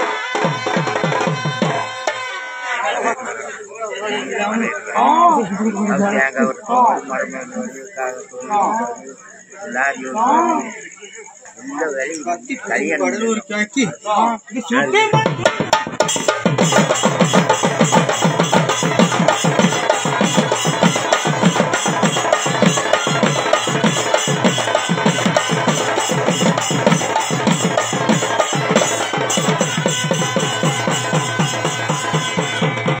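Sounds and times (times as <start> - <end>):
drums playing fast rhythm: 0.0 - 2.4, 14.9 - 33.0.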